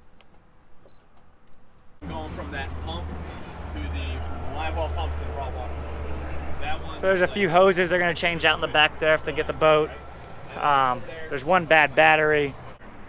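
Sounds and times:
indistinct talking: 0:02.0 - 0:12.8.

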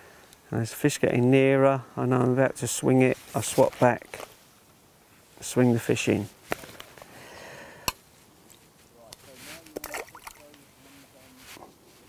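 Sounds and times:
water sloshing: 0:09.6 - 0:10.7.

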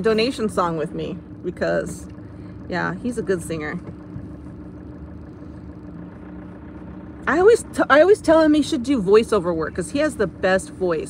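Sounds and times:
car engine hum from inside: 0:00.0 - 0:11.0.

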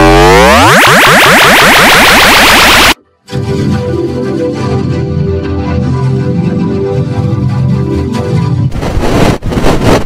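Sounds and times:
fast rising sweeps: 0:00.0 - 0:03.0
processed tv logo tones: 0:00.0 - 0:03.0.

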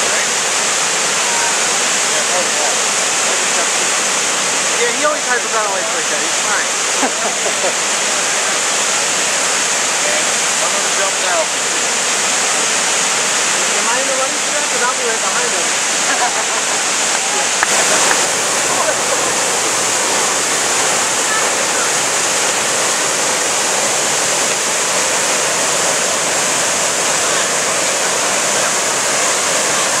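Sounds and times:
waterfall rushing: 0:00.0 - 0:30.0
faint voices: 0:07.3 - 0:30.0.

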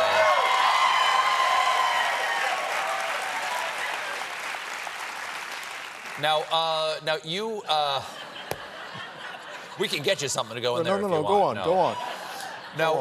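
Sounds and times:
studio audience applauding: 0:00.0 - 0:07.0.

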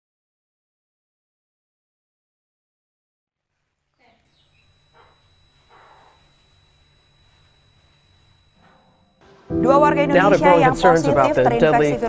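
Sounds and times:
faint electrical hum: 0:04.3 - 0:10.2
high-pitched whining tones: 0:04.3 - 0:10.6.

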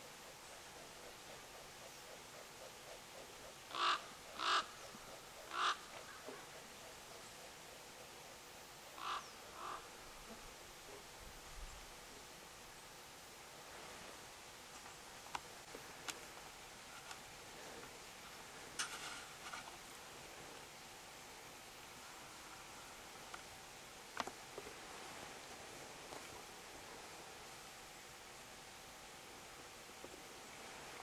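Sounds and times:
faint outdoor hiss: 0:00.0 - 0:31.0
crow cawing: 0:03.7 - 0:04.8, 0:05.4 - 0:06.4, 0:09.0 - 0:09.9.

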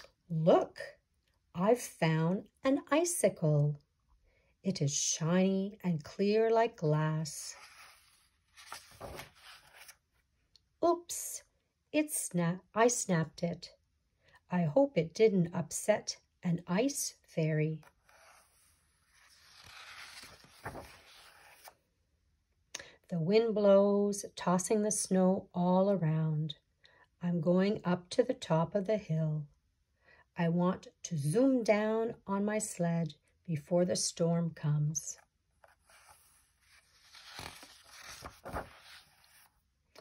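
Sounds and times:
paper page rustling: 0:07.4 - 0:10.2, 0:17.8 - 0:21.8, 0:35.6 - 0:39.6
soft bumps of page: 0:07.5 - 0:10.0, 0:17.9 - 0:21.8, 0:35.6 - 0:39.6.

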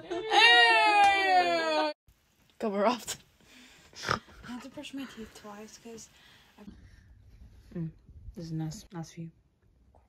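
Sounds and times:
woman wailing with laughter: 0:00.0 - 0:02.0.

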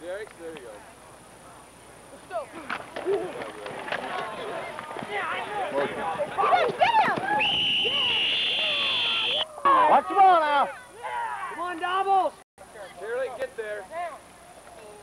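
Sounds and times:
spectators shouting: 0:03.0 - 0:12.4
referee whistle blast: 0:07.3 - 0:09.9.

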